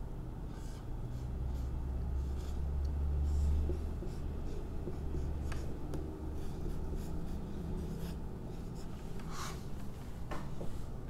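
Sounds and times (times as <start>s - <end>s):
steady low hum: 0.0s - 11.0s
marker squeaking on whiteboard: 3.2s - 9.7s.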